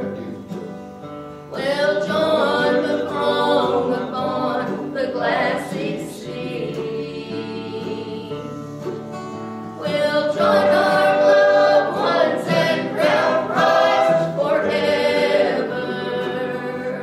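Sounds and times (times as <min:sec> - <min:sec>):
acoustic guitar: 0:00.0 - 0:17.0
woman singing a gospel hymn: 0:01.5 - 0:08.6, 0:09.8 - 0:17.0.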